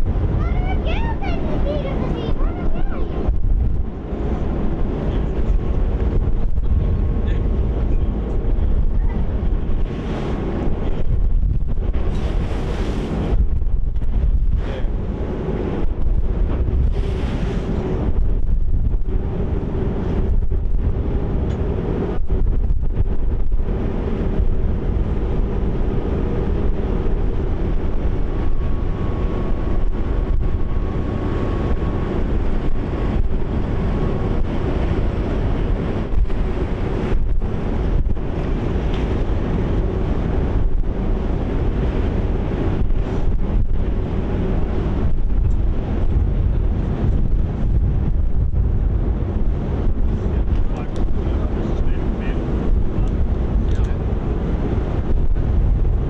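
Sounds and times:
ferry engines humming: 0:00.0 - 0:56.0
water rushing past hull: 0:00.0 - 0:56.0
wind buffeting microphone: 0:00.0 - 0:56.0.

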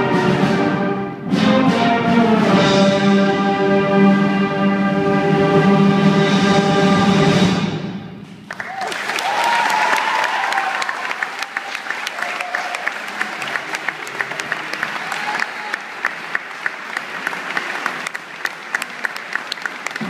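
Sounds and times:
audience applauding: 0:08.4 - 0:20.0.

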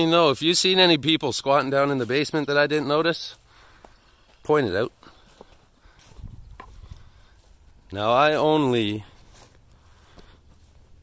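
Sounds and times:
footsteps on dirt and grass: 0:00.0 - 0:11.0.

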